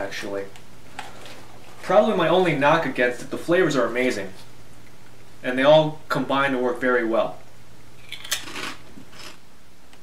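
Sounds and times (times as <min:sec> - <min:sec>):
potato chip crunching: 0:08.0 - 0:09.4.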